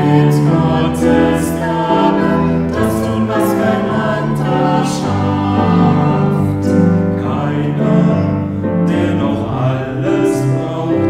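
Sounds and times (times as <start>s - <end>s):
choir singing a hymn: 0.0s - 11.0s
piano accompaniment: 0.0s - 11.0s.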